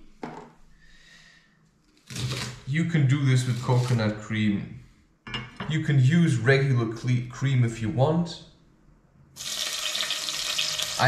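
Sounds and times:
vegetables sizzling in fat: 9.4s - 11.0s.

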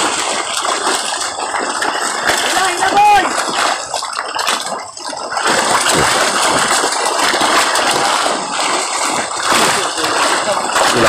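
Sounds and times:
fish thrashing and splashing: 0.0s - 11.0s.

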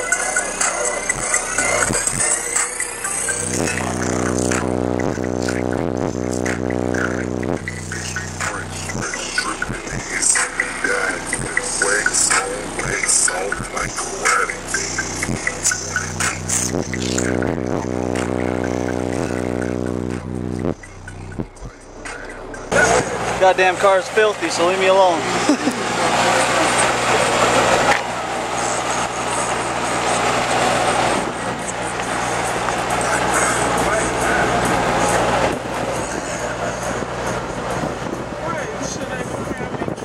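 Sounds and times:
long held bass notes: 0.0s - 40.0s
loud music through subwoofers: 0.0s - 40.0s.

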